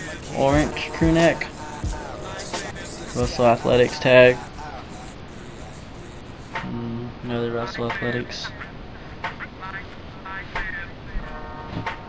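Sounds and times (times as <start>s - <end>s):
faint voice: 4.6s - 7.2s.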